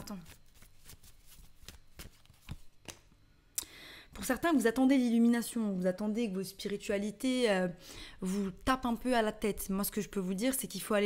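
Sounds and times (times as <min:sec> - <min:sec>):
cards being shuffled: 0:00.0 - 0:03.1.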